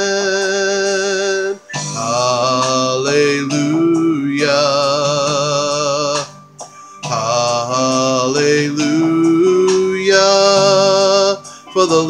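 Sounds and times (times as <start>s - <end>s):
man singing slow long notes: 0.0s - 6.4s, 7.0s - 12.0s.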